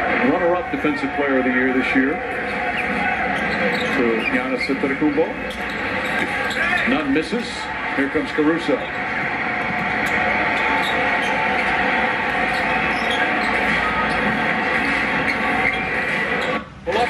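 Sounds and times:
arena crowd noise on tv: 0:00.0 - 0:17.0.

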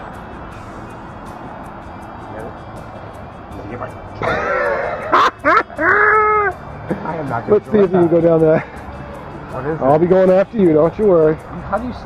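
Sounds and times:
steady background noise: 0:00.0 - 0:12.0
person making high wordless calls: 0:04.2 - 0:06.6.

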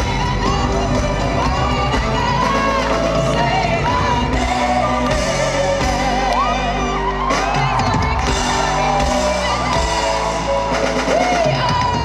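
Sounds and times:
live pop band playing: 0:00.0 - 0:12.0
person singing: 0:00.0 - 0:12.0.

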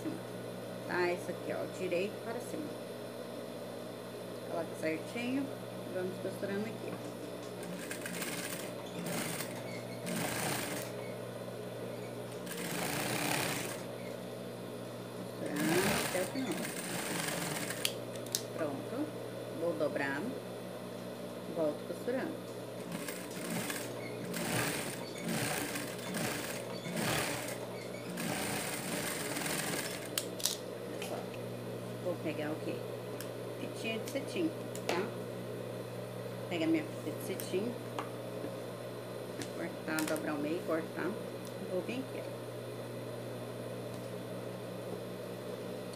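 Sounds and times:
motor humming: 0:06.6 - 0:18.7, 0:22.4 - 0:30.5
sewing machine stitching: 0:07.6 - 0:11.0, 0:12.4 - 0:13.9, 0:15.5 - 0:17.9, 0:22.8 - 0:30.1.

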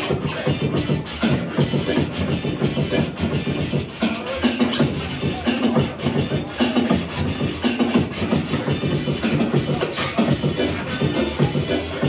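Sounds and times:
beat: 0:00.0 - 0:12.0
vinyl record scratching: 0:00.0 - 0:12.0.

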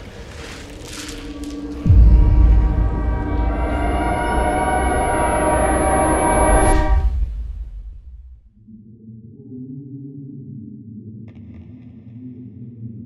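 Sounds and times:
thin high whine: 0:01.1 - 0:08.4
sustained horn-like chord: 0:01.2 - 0:08.4
deep bass boom falling pitch: 0:01.8 - 0:08.5.

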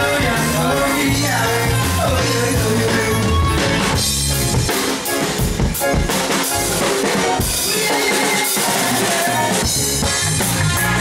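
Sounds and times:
bass: 0:00.0 - 0:11.0
drum kit playing: 0:00.0 - 0:11.0.

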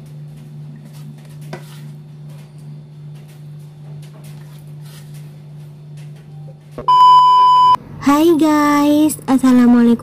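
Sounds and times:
loud test-tone beep: 0:06.9 - 0:07.8.

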